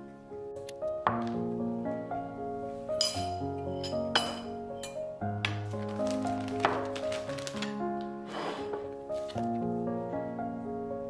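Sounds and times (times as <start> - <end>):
soft piano music: 0.0 - 11.0
ceramic bowl and spoon clinking: 3.0 - 5.0.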